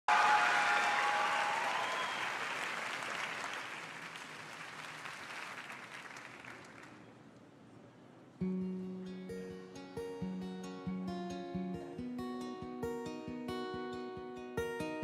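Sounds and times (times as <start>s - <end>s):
audience applauding: 0.1s - 7.0s.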